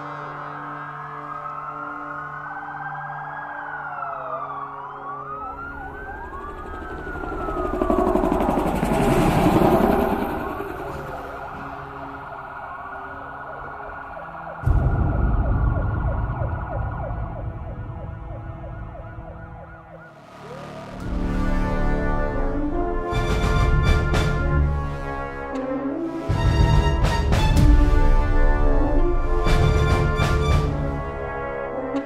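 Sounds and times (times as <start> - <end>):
sirens wailing: 0.0 - 32.0
sustained drone: 4.2 - 26.1
low rumble: 5.8 - 20.0
deep hit: 14.6 - 18.3.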